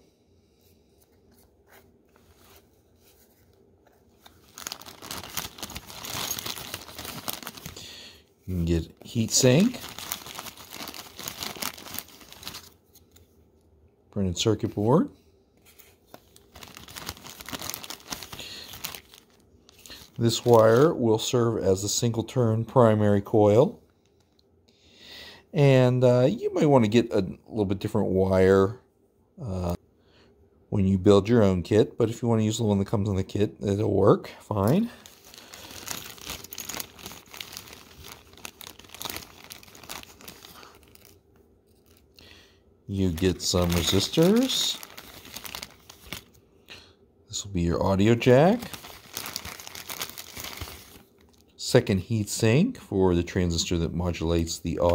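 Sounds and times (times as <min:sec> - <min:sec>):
plastic bag crinkling: 0:04.0 - 0:13.0, 0:16.1 - 0:21.0, 0:34.5 - 0:42.2, 0:42.9 - 0:46.4, 0:47.8 - 0:51.5.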